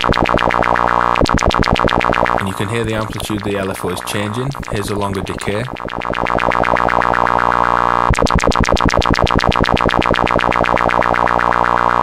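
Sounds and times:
pulsing filtered synthesizer tone: 0:00.0 - 0:12.0.

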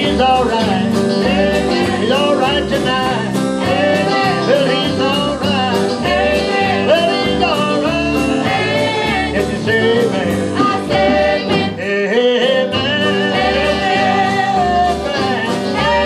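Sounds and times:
electric guitar: 0:00.0 - 0:11.9
keyboard: 0:00.0 - 0:12.0
person singing: 0:00.0 - 0:16.0.

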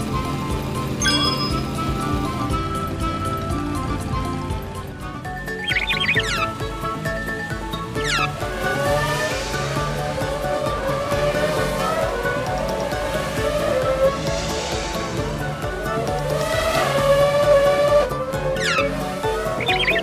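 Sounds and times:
rising revving tone: 0:00.0 - 0:20.0
upbeat cartoon music: 0:00.0 - 0:20.0
quick sweeping sound effects: 0:13.3 - 0:17.2.

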